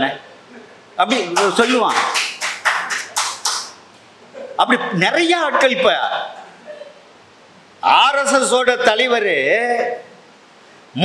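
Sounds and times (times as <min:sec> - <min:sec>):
hand clapping: 0:01.1 - 0:03.8.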